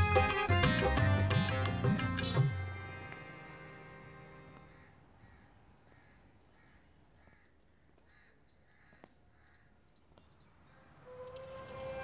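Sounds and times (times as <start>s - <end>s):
birds calling: 0.0s - 3.4s, 4.0s - 12.0s.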